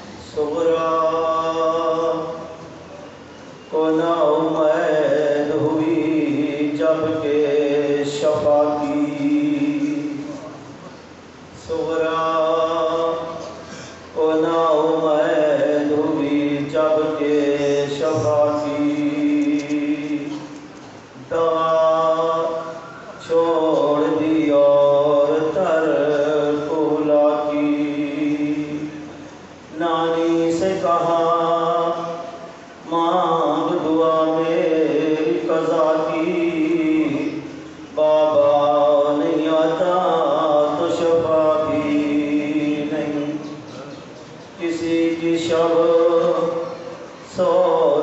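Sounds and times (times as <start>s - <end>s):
man chanting into a microphone: 0.0s - 3.0s, 3.6s - 10.9s, 11.5s - 48.0s.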